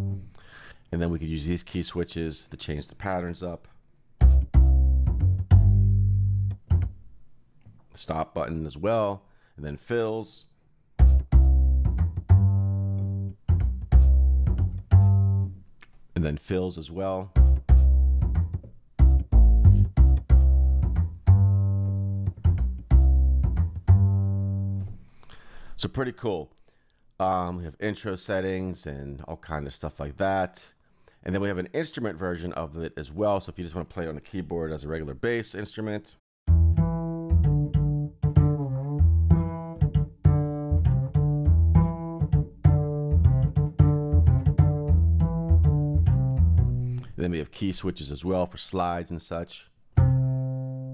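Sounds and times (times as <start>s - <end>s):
plucked upright bass phrase: 0.0s - 0.2s, 4.2s - 7.0s, 11.0s - 15.6s, 17.2s - 25.0s, 36.5s - 47.1s, 50.0s - 50.9s.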